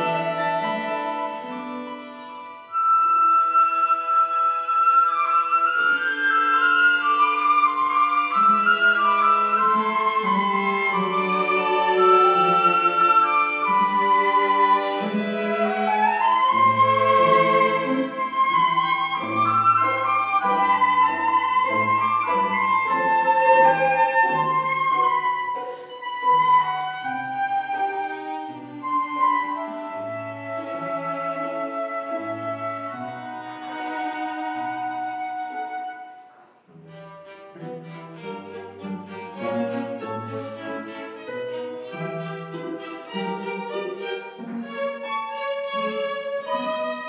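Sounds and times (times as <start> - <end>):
bowed strings: 0.0 - 36.0, 36.7 - 47.0
plucked psaltery: 0.0 - 36.0
flute: 0.0 - 37.0, 46.0 - 47.0.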